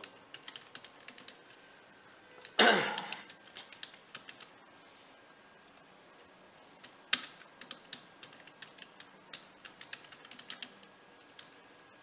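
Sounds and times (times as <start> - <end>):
computer keyboard typing: 0.0 - 1.6, 2.4 - 4.6, 6.8 - 11.6.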